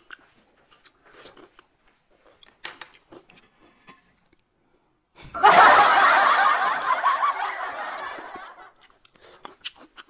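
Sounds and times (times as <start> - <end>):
person laughing loudly: 5.3 - 8.7.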